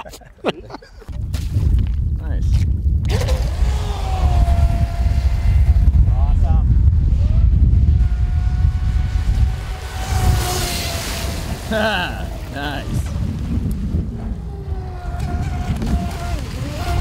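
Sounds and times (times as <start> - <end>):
heavy low rumble: 1.1 - 16.4
rc boat motor whining: 3.1 - 12.6, 14.0 - 17.0
rush of water spray: 9.7 - 12.6.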